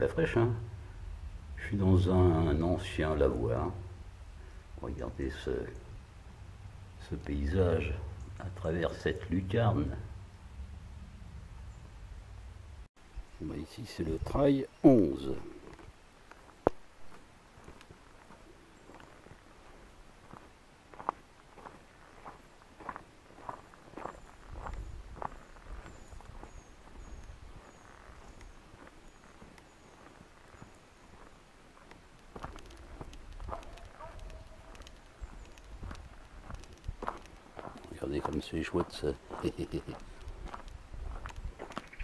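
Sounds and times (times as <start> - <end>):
footsteps on gravel: 16.3 - 42.0.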